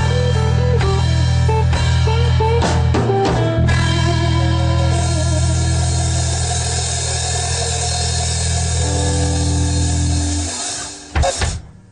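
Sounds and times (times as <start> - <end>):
bass and guitar chord ringing: 0.0 - 11.9.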